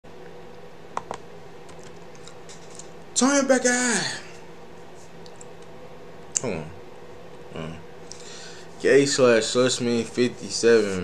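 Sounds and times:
faint electrical hum: 0:00.1 - 0:11.0.

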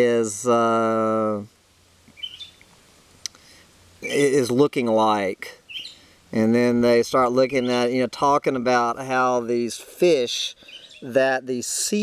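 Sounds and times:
faint bird chirps: 0:02.1 - 0:02.8, 0:05.6 - 0:06.2, 0:10.5 - 0:11.2.

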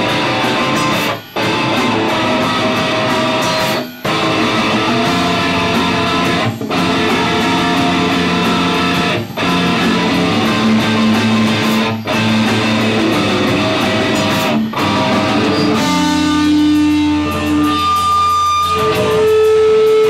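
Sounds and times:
hardcore band playing live: 0:00.0 - 0:20.0.

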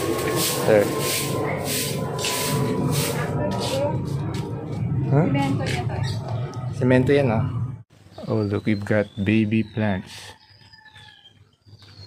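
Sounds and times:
stick broom sweeping concrete: 0:00.0 - 0:03.9.

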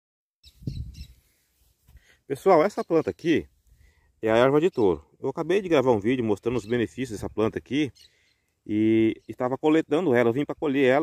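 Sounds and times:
faint bird chirps: 0:00.4 - 0:01.6, 0:02.6 - 0:05.2, 0:06.4 - 0:09.5.

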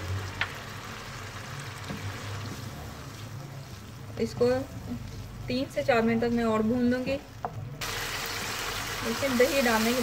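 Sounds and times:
food sizzling in a pan: 0:00.0 - 0:05.2, 0:07.8 - 0:10.0.

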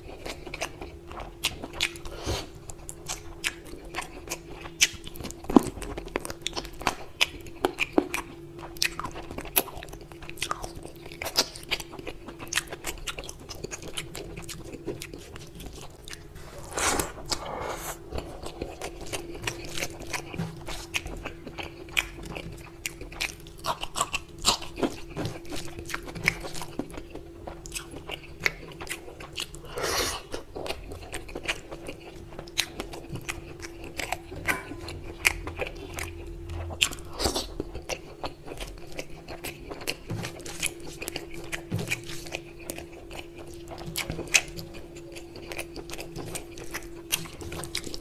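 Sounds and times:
chewing and wet mouth sounds: 0:00.0 - 0:48.0
faint steady hum: 0:00.0 - 0:48.0.

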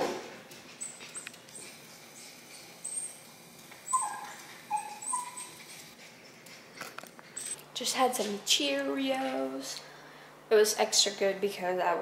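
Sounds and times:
small dog whimpering: 0:03.8 - 0:06.0.

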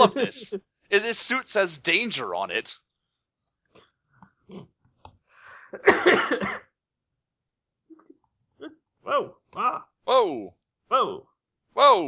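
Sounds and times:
man clearing his throat: 0:05.8 - 0:06.6.

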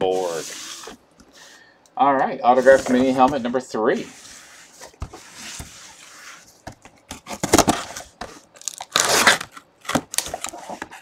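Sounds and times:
cardboard box being torn open: 0:08.6 - 0:10.5.

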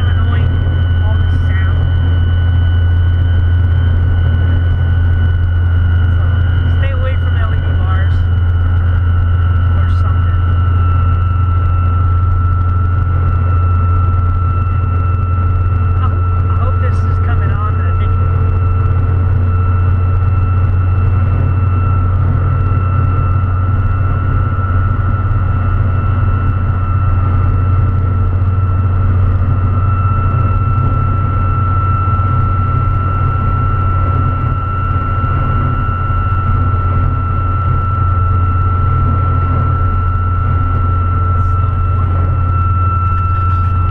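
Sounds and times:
road noise: 0:00.0 - 0:01.6
diesel engine drone: 0:00.0 - 0:43.9
high wind whistle: 0:00.0 - 0:43.9.

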